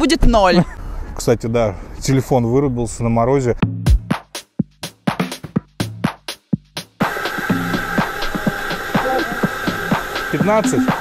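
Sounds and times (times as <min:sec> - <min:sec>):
background music with soft beat: 0:03.6 - 0:11.0
high-pitched hum: 0:07.0 - 0:11.0.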